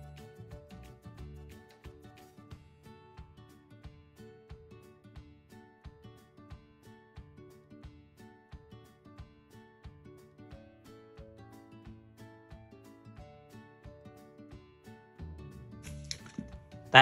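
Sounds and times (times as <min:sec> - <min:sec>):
soft background music: 0:00.0 - 0:17.0.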